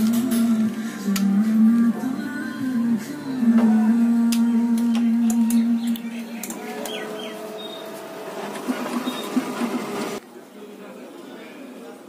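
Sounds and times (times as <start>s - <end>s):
copier starting up: 6.5s - 10.2s.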